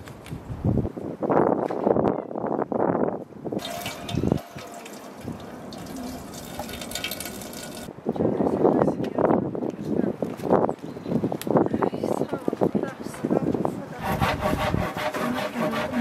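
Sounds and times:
tap water splashing into metal bowl: 0:03.6 - 0:07.9.

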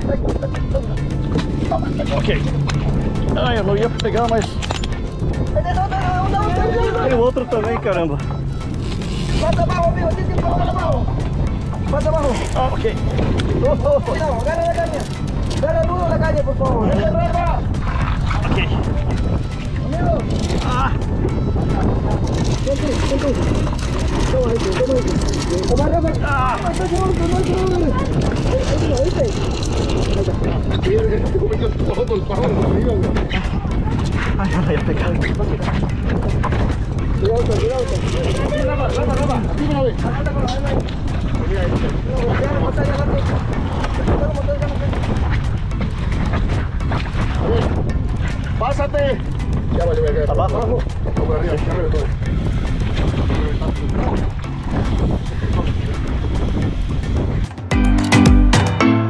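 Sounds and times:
boat engine rumble: 0:00.0 - 0:57.7
wind noise: 0:00.0 - 0:57.8.

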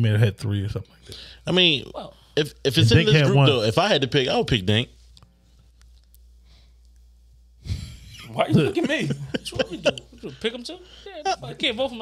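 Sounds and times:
man talking: 0:00.0 - 0:05.0, 0:08.2 - 0:12.0.

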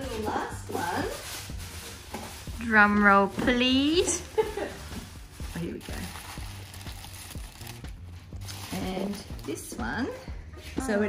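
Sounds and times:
tissue paper rustling: 0:00.0 - 0:09.8
quiet background music: 0:00.0 - 0:11.0.

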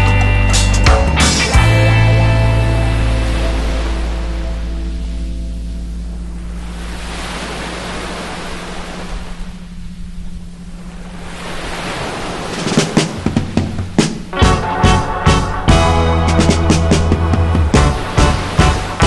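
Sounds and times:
music chord and bass: 0:00.0 - 0:08.2, 0:14.3 - 0:19.0
steady low tone: 0:01.0 - 0:11.8
ocean surf on beach: 0:01.4 - 0:19.0.

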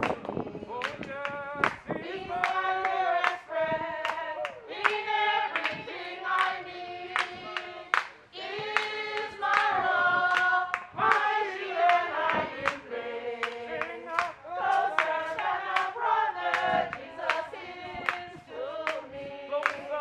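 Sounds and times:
hand clapping: 0:00.0 - 0:05.8, 0:07.2 - 0:09.7, 0:10.3 - 0:11.3, 0:13.4 - 0:20.0
group of people singing: 0:00.0 - 0:20.0.

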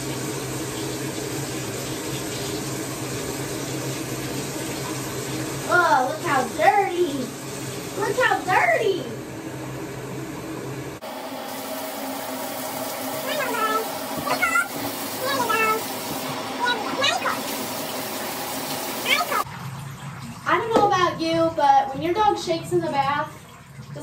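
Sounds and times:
water splashing in a bathtub: 0:00.0 - 0:09.2, 0:11.0 - 0:24.0.

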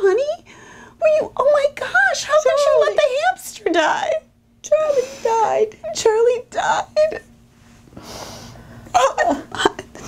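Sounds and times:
woman imitating child crying: 0:02.4 - 0:03.0.

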